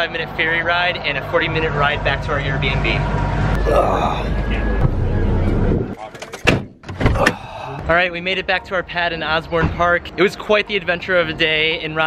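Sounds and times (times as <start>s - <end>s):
car door shutting: 6.2s - 7.5s.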